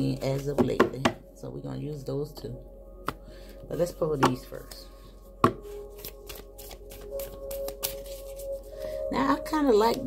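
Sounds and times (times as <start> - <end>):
cards being shuffled: 5.7 - 8.7.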